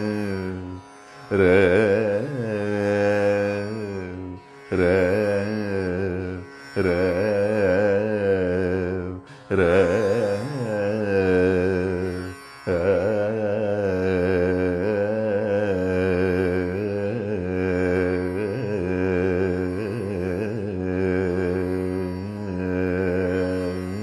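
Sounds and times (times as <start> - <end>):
man singing: 0.0 - 24.0.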